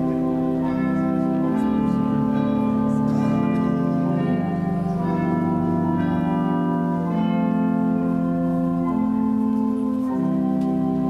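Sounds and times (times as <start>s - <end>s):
organ playing slow chords: 0.0s - 11.0s.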